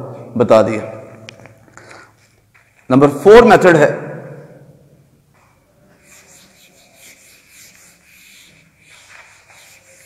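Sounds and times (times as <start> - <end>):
eraser rubbing on whiteboard: 5.9 - 10.0.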